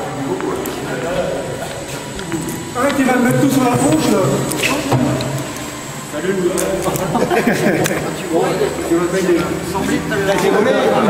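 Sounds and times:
indistinct talking voices: 0.0s - 11.0s.

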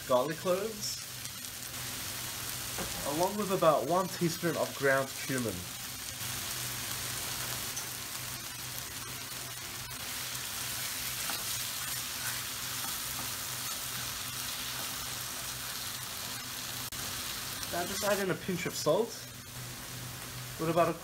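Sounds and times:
onion and garlic sizzling in oil: 0.0s - 21.0s.

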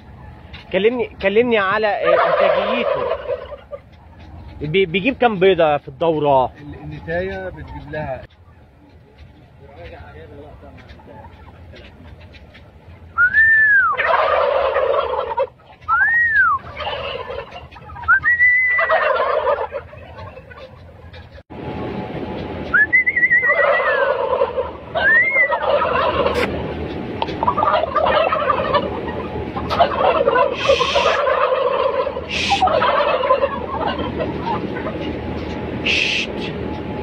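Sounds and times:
turkeys gobbling: 0.0s - 21.4s, 22.4s - 37.0s
rising and falling whistles: 13.2s - 14.0s, 15.9s - 16.7s, 18.0s - 18.9s, 22.7s - 24.2s, 25.0s - 25.6s.

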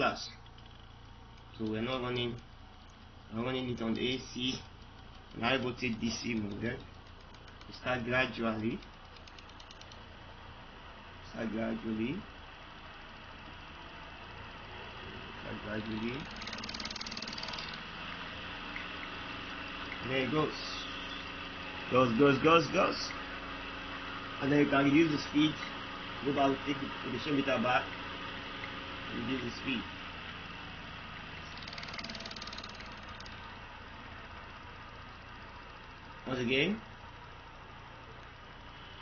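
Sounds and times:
fast high-pitched rattle: 0.0s - 10.4s, 15.3s - 21.4s, 26.3s - 38.6s
rapid even ticking: 0.0s - 10.6s, 15.3s - 20.7s, 27.2s - 38.7s
low electrical hum of motor: 0.0s - 39.0s.

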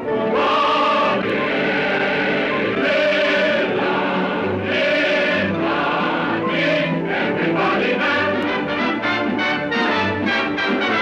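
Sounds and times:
choir singing: 0.0s - 11.0s
musical backing: 0.0s - 11.0s.

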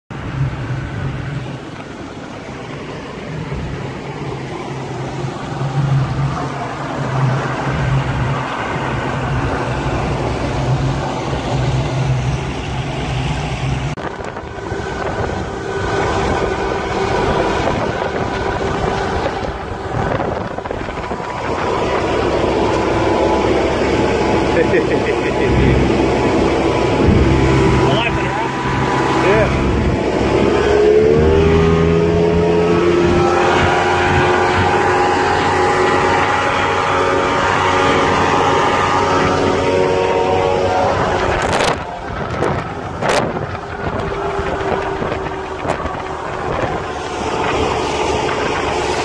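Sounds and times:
motorboat engine drone: 0.1s - 49.0s
water rushing past hull: 0.1s - 49.0s
wind buffeting microphone: 0.1s - 49.0s.

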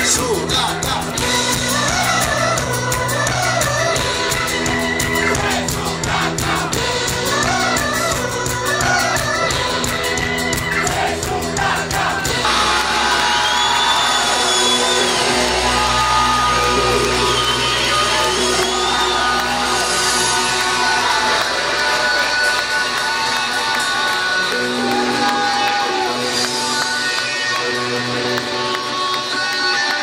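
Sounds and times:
loud live band music: 0.0s - 30.0s.

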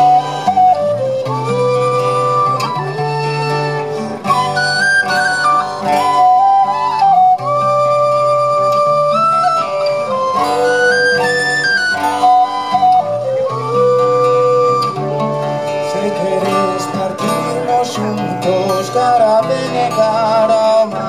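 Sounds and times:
flutes playing quick melody: 0.0s - 18.0s
acoustic guitar accompaniment: 0.0s - 21.0s.

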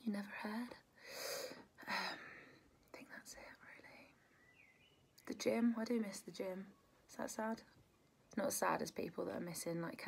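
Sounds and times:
woman whispering: 2.9s - 4.2s.

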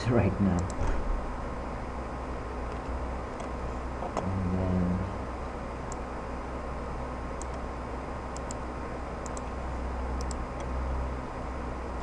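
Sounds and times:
office room hum: 0.0s - 12.0s
short low pitched hum: 0.0s - 12.0s.

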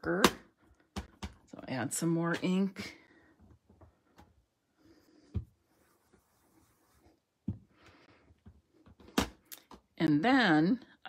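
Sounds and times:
faint handling sounds: 3.3s - 9.8s.

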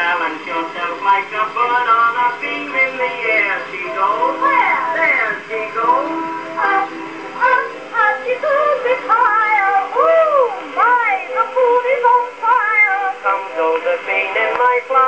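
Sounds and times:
small orchestra on phonograph record: 0.0s - 15.0s.

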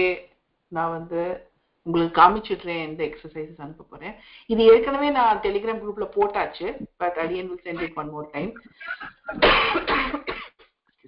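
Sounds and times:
person coughing: 8.9s - 10.6s.

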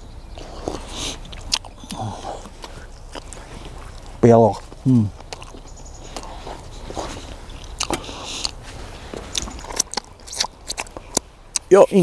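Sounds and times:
man chewing leaves: 0.0s - 11.8s
chewing clicks: 0.4s - 8.6s, 9.2s - 11.7s.

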